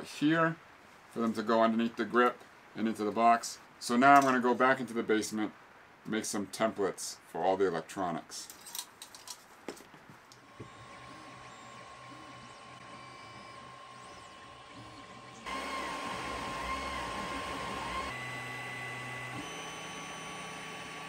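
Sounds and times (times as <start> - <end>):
fan hum: 10.3 - 21.0
stepper motors whining: 10.4 - 21.0.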